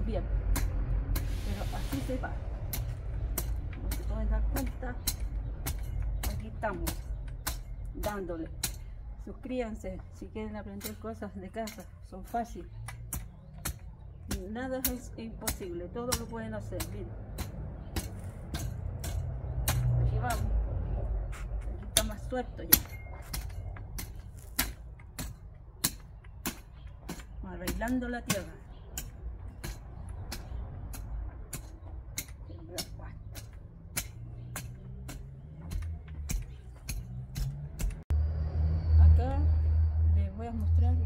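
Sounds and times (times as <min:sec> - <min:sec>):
steady low rumble: 0:00.0 - 0:41.0
rake scraping stony soil: 0:01.1 - 0:03.0, 0:21.2 - 0:27.3
metal rake scraping stony soil: 0:01.2 - 0:02.4, 0:22.7 - 0:24.8.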